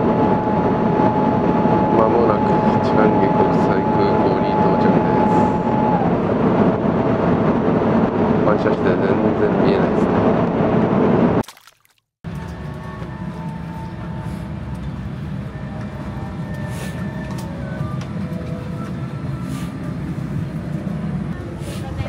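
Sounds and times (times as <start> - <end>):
loud airliner cabin roar: 0.0 - 11.4, 12.3 - 22.0
parked airliner cabin hum: 0.0 - 11.4, 12.3 - 22.0.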